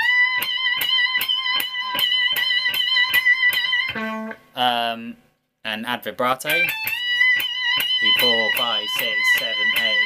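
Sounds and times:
electric guitar bent note re-picked: 0:00.0 - 0:04.6.

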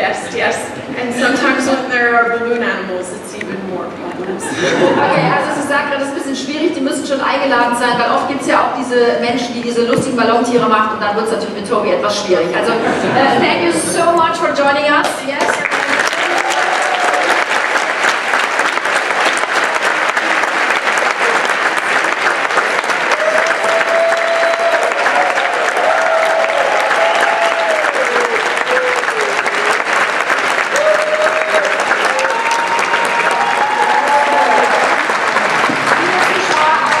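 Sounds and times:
studio audience applauding: 0:15.4 - 0:37.0.

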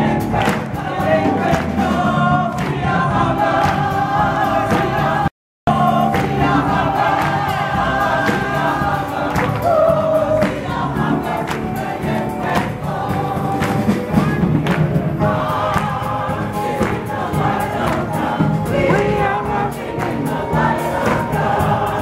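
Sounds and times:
choir singing gospel song: 0:00.0 - 0:22.0
hand-clapping: 0:00.3 - 0:03.0, 0:03.6 - 0:04.1, 0:06.1 - 0:20.4, 0:21.0 - 0:21.6.

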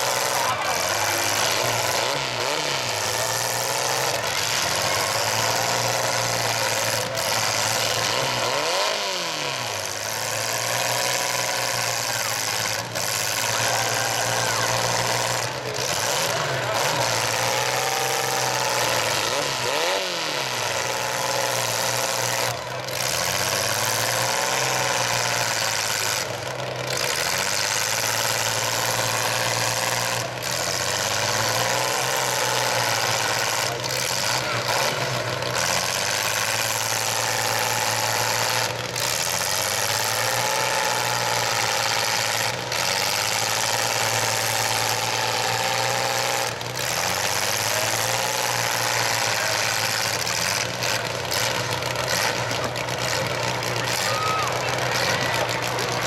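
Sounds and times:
pickup truck engines revving: 0:00.0 - 0:56.0.

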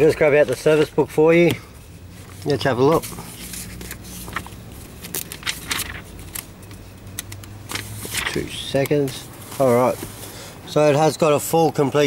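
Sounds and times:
paper pages rustling: 0:00.0 - 0:10.4.

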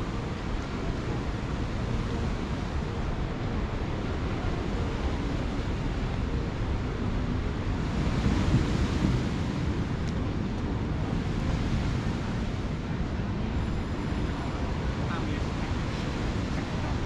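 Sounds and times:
surf washing onto shore: 0:00.0 - 0:17.0
wind buffeting microphone: 0:00.0 - 0:17.0.

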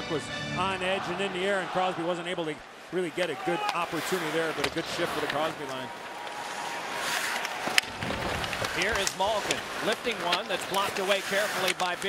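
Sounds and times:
arena crowd din: 0:00.0 - 0:12.0
puck crack on ice: 0:04.5 - 0:12.0
commentator speaking: 0:08.8 - 0:12.0.

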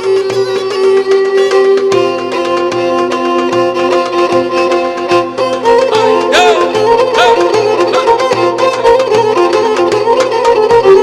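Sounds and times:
folk dance music: 0:00.0 - 0:11.0
violin melody: 0:00.0 - 0:11.0.

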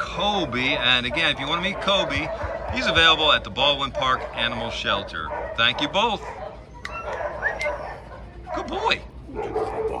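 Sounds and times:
dog whining and yipping: 0:06.2 - 0:08.7.

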